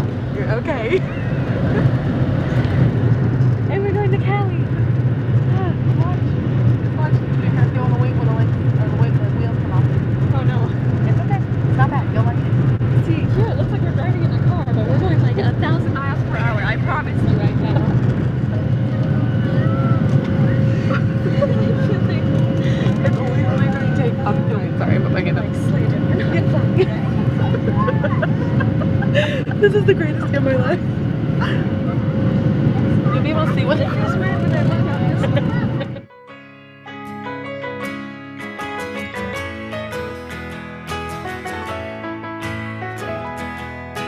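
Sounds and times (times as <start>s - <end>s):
aircraft cabin engine rumble: 0.0s - 36.1s
steady hum: 0.0s - 36.1s
faint voices: 0.2s - 36.1s
music: 36.1s - 44.0s.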